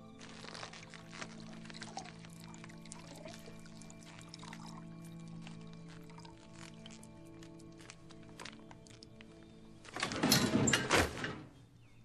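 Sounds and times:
quiet sustained music tones: 0.0 - 12.0.

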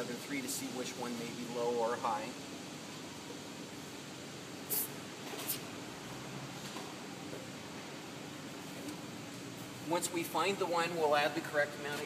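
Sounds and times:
steady background hiss: 0.0 - 12.0
air hissing from tire valve: 4.6 - 5.7.

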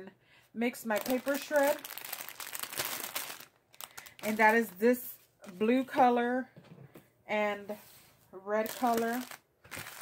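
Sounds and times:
plastic bag crinkling: 0.8 - 4.8, 8.6 - 10.0.

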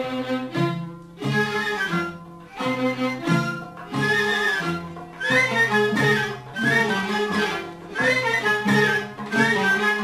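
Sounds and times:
bowed strings melody: 0.0 - 10.0.

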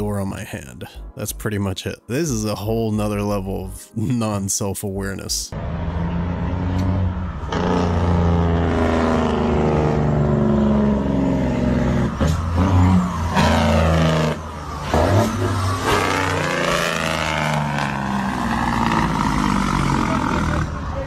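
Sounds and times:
truck engine running: 5.6 - 21.0.

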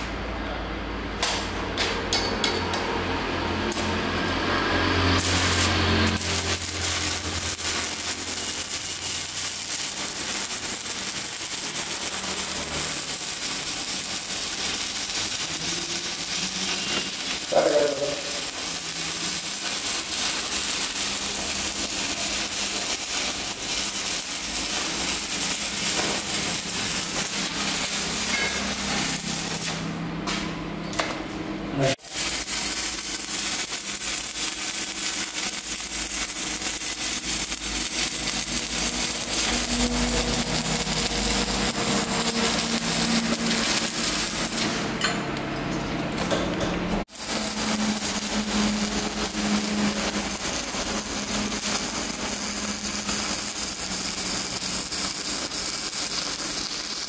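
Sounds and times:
welding arc crackling and hissing: 2.8 - 30.4, 31.8 - 45.0, 46.9 - 57.0.

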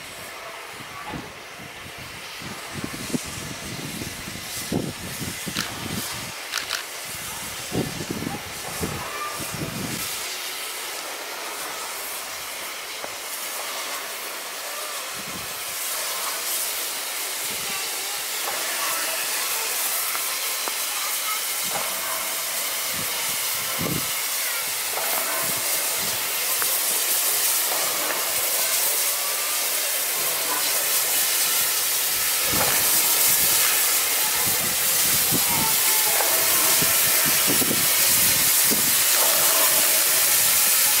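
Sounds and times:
steam hissing: 0.0 - 41.0.

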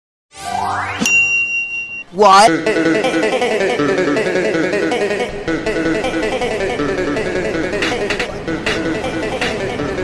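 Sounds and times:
bright ringing ding: 0.9 - 2.4.

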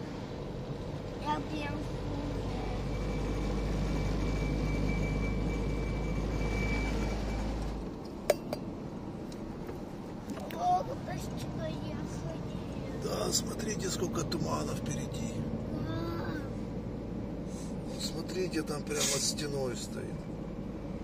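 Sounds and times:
car road and engine rumble: 0.0 - 21.0.

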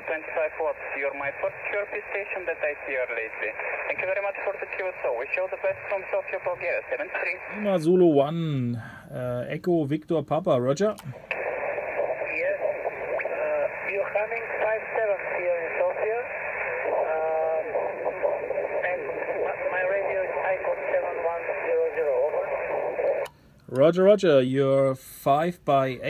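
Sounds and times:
tinny radio speech: 0.0 - 7.9, 11.1 - 23.2
static hiss: 0.0 - 8.3, 11.1 - 23.4.

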